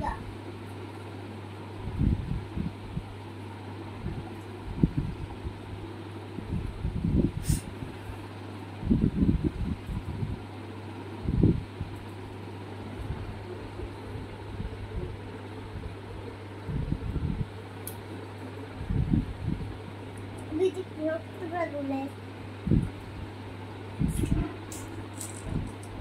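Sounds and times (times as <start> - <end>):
fan running: 0.0 - 26.0.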